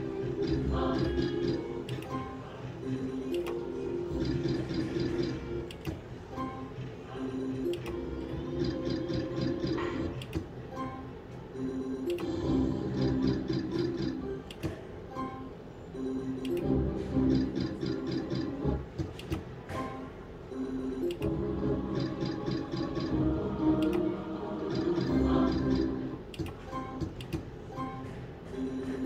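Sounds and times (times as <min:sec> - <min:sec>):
slot machine game music: 0:00.0 - 0:19.0, 0:19.8 - 0:27.0, 0:27.6 - 0:29.0.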